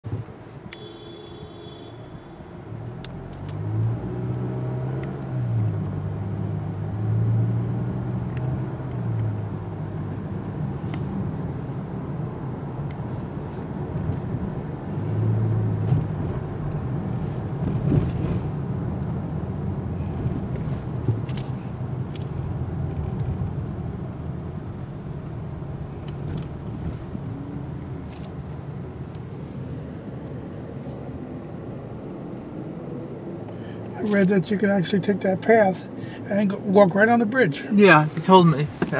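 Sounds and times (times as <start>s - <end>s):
car engine: 0.0s - 38.9s
road rumble: 0.0s - 38.9s.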